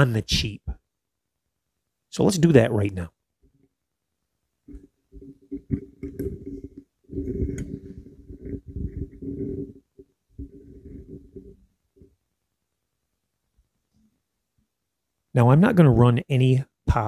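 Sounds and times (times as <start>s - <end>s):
microphone handling knocks: 4.7s - 11.6s.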